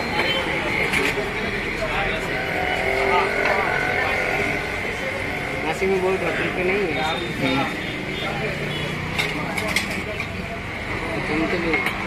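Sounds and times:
street traffic: 0.0s - 12.0s
voices: 0.0s - 12.0s.

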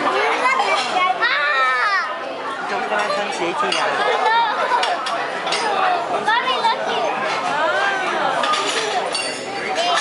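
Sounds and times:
children's voices playing: 0.0s - 10.0s
child's high-pitched excited cry: 1.2s - 2.1s.

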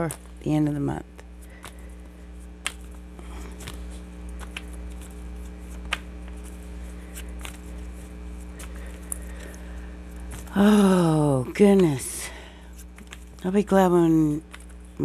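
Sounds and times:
cards clicking and knocking: 0.0s - 10.6s, 12.8s - 13.5s
cards slipping and rustling: 0.0s - 10.9s, 11.7s - 13.6s, 14.4s - 15.0s
steady low hum: 0.0s - 15.0s.

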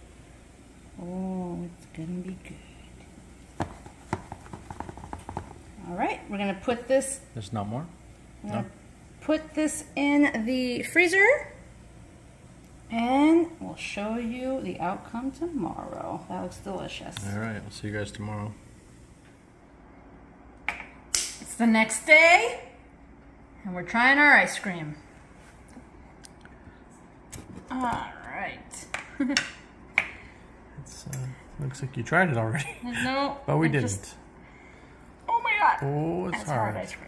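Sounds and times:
spatula knocking on plastic tub: 3.6s - 5.6s
sharp snap-like click: 20.7s - 21.4s.

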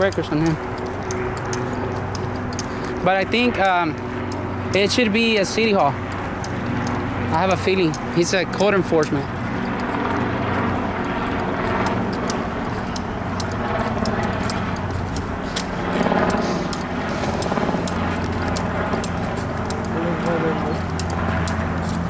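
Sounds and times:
footsteps on asphalt: 0.0s - 22.0s.

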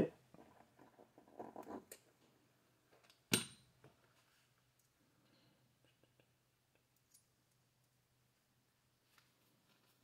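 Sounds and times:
faint fiddling with small parts: 0.1s - 10.0s.

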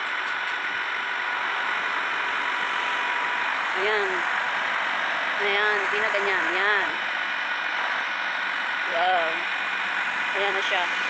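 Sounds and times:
truck engine running: 0.0s - 11.0s.

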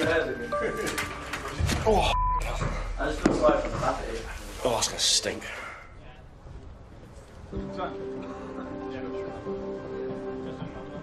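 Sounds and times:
background music: 0.0s - 3.6s, 7.5s - 11.0s
men talking: 0.0s - 6.4s, 7.6s - 11.0s
men laughing: 10.1s - 11.0s.

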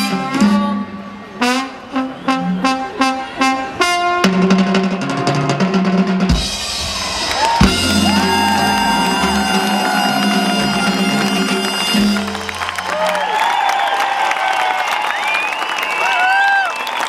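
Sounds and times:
live latin band playing: 0.0s - 13.1s
drum roll: 4.2s - 12.8s
rapid drum fill: 4.3s - 12.4s.

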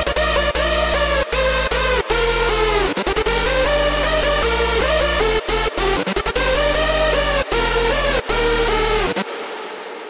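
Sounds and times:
sub bass: 0.0s - 10.0s
synth lead: 0.0s - 10.0s.

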